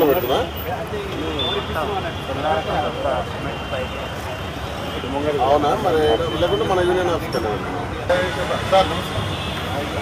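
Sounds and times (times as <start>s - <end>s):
men talking: 0.0s - 10.0s
street traffic hum: 0.0s - 10.0s.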